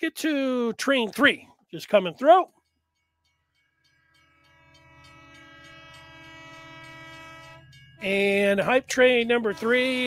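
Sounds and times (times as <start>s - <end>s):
train rumbling: 3.6s - 10.0s
train horn blast: 4.0s - 10.0s.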